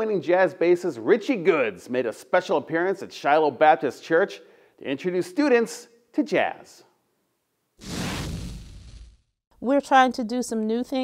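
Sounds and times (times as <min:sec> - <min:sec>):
whoosh sound effect: 0:07.8 - 0:09.3.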